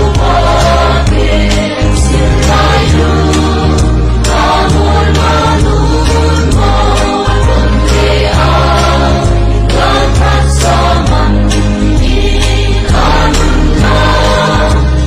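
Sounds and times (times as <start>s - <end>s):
held bass notes: 0.0s - 15.0s
mixed choir singing gospel: 0.0s - 15.0s.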